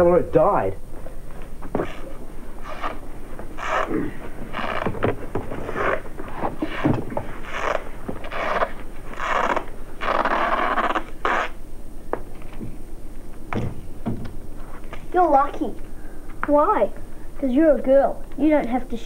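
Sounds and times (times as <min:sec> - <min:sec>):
adhesive tape rasping off roll: 0:01.8 - 0:03.9, 0:04.5 - 0:11.6.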